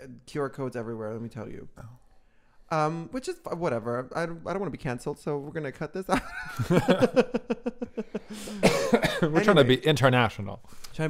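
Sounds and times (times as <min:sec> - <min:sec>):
men laughing: 0:06.1 - 0:09.4.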